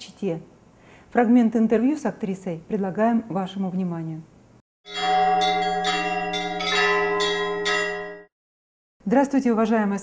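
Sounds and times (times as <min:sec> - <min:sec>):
higher bell strikes: 0:04.9 - 0:08.3
low bell humming: 0:04.9 - 0:08.3.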